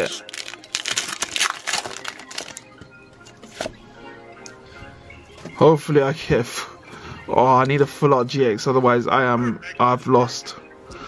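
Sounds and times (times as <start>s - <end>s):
foil wrapper crinkling: 0.0s - 2.6s
faint background music: 0.0s - 11.0s.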